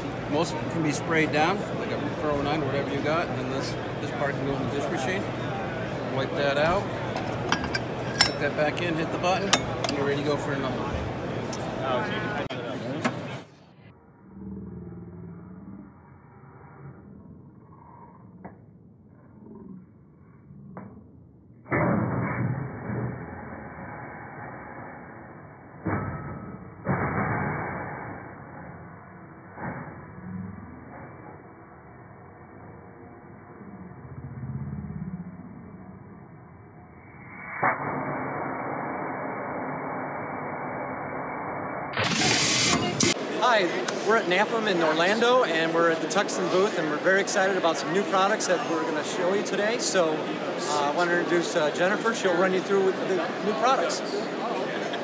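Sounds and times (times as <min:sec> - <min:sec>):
loud hissy noise: 0:41.8 - 0:44.1.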